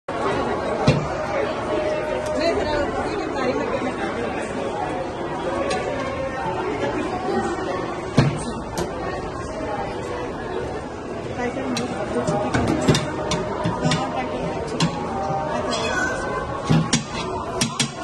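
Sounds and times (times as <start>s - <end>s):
voices chattering in a hall: 0.1s - 18.0s.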